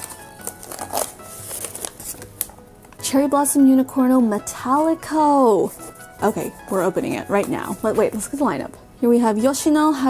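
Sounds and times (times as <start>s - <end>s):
paper wrapping crinkling: 0.0s - 3.0s
soft background music: 0.0s - 10.0s.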